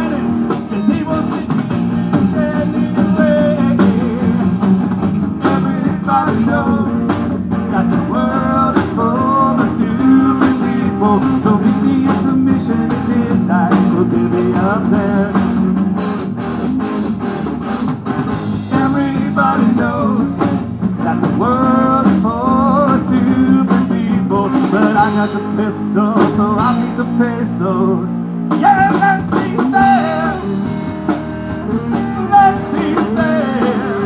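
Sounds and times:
bass guitar: 0.0s - 34.0s
drum kit with cymbals: 0.0s - 34.0s
electric guitars: 0.0s - 34.0s
lead guitar line bending: 0.0s - 34.0s.

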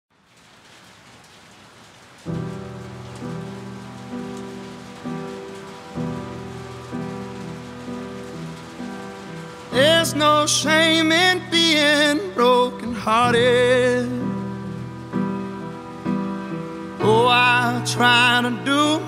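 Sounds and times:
heavy rain on a roof: 0.1s - 19.0s
piano playing slow chords: 2.3s - 19.0s
person singing: 9.7s - 14.8s, 17.0s - 19.0s.

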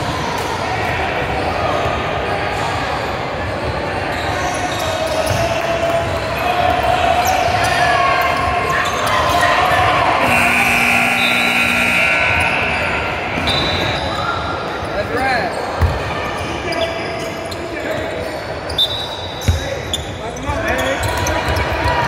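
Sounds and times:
sneakers squeaking: 3.5s - 22.0s
people's voices echoing: 5.6s - 15.8s
steady tone: 10.2s - 13.9s.

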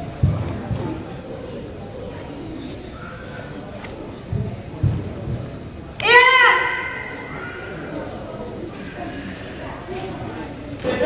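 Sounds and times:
murmur of voices echoing: 0.0s - 11.0s.

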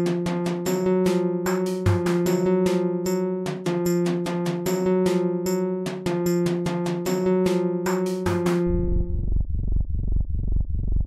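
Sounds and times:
pulsing low synthesizer: 0.0s - 11.0s.

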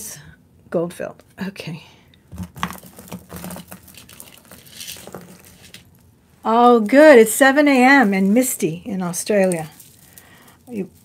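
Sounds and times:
jewelry clinking and rattling: 2.6s - 5.8s, 6.7s - 11.0s.

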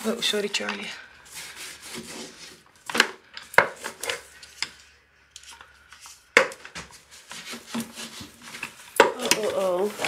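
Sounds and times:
soft rubbing and scraping: 0.0s - 2.7s, 6.8s - 10.0s.

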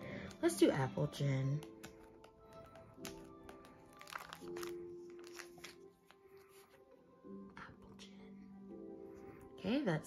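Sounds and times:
soft background music: 0.0s - 10.0s
plastic sleeves crinkling: 1.6s - 6.7s.

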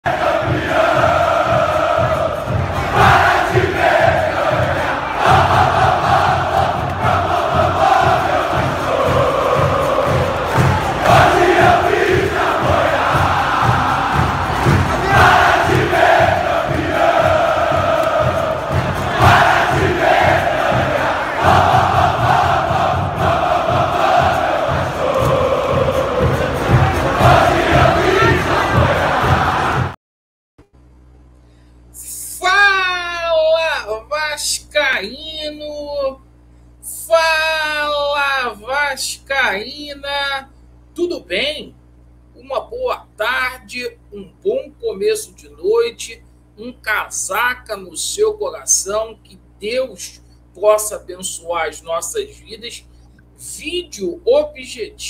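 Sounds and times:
crowd singing a chant: 0.0s - 30.0s
steady low beat: 0.1s - 30.0s.

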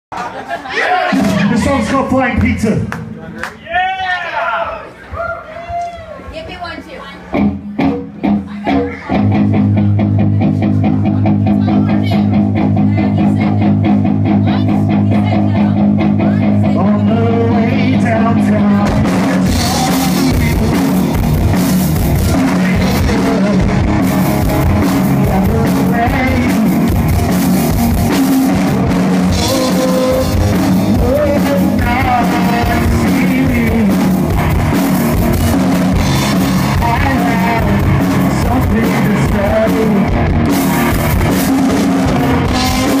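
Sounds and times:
drums: 0.1s - 43.0s
electric guitar stabs: 7.4s - 43.0s
repeated guitar chord pattern: 7.4s - 43.0s
man singing: 16.2s - 27.3s, 28.6s - 34.4s, 36.2s - 40.6s, 41.4s - 43.0s.

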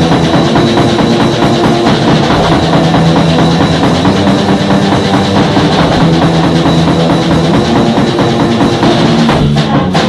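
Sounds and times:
drum kit beat: 0.0s - 10.0s.

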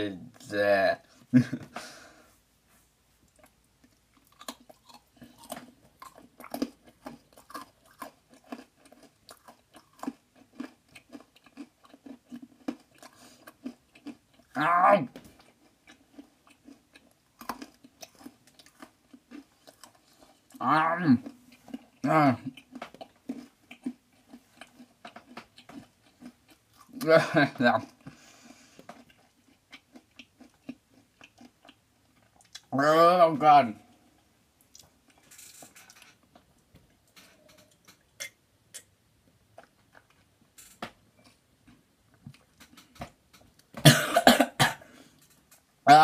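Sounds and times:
soft rustle: 2.2s - 3.4s
person chewing crunchy brittle: 3.2s - 32.7s, 39.5s - 43.8s.

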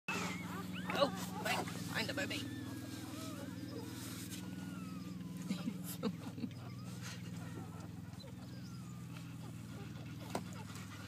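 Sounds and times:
newborn puppies squeaking: 0.1s - 11.0s
steady low hum: 0.1s - 11.0s.

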